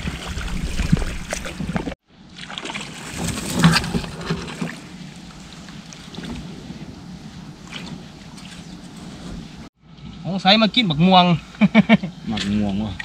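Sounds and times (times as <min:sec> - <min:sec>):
water sloshing and splashing: 0:00.0 - 0:09.7, 0:12.4 - 0:13.0.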